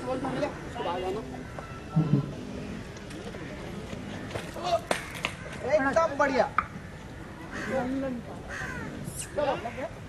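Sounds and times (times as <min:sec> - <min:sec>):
crow cawing: 0:00.3 - 0:05.9, 0:06.6 - 0:09.9.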